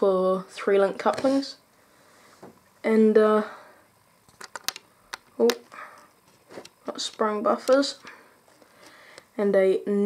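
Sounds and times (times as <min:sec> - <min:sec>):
small sharp plastic clicks: 0:04.3 - 0:05.7.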